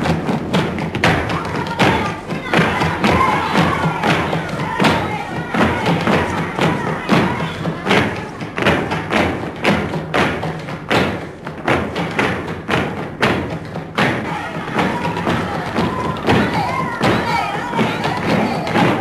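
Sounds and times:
dancers stamping heels on floor: 0.0 - 19.0.

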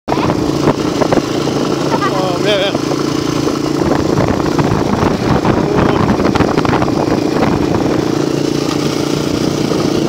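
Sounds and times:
dirt bike engine running: 0.1 - 10.0.

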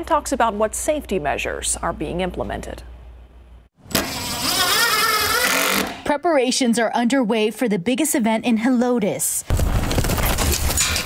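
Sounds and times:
power driver whining: 3.8 - 6.1.

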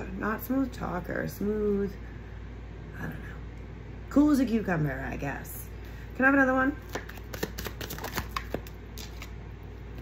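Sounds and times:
cards being shuffled: 6.8 - 9.4.

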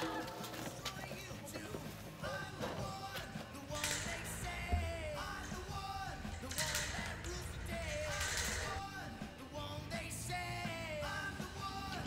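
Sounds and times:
rock song: 0.8 - 12.0.

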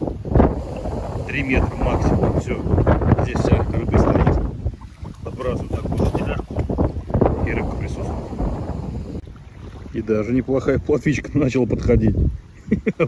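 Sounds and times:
strong wind buffeting microphone: 0.0 - 13.0.

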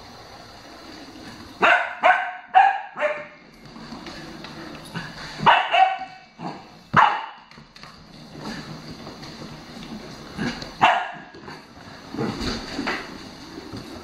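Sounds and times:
puppy barking: 1.6 - 3.4, 5.5 - 6.3, 7.0 - 7.5, 10.8 - 11.3.

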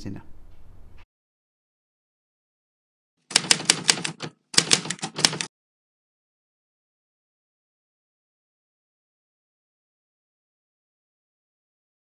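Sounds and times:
typewriter keys clacking: 3.3 - 5.5.

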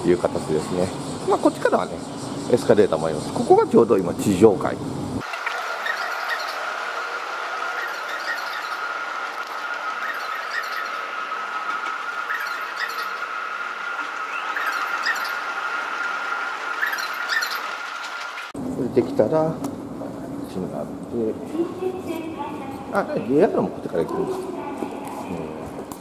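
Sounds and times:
escalator whining: 4.7 - 18.6
faint squeaks: 5.6 - 7.1, 7.7 - 15.6, 16.8 - 17.8.

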